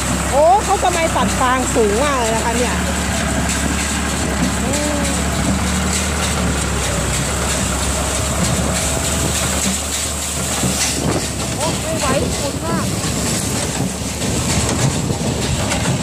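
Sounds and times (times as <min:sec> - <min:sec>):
baler working: 0:00.0 - 0:16.0
tractor diesel engine running: 0:00.0 - 0:16.0.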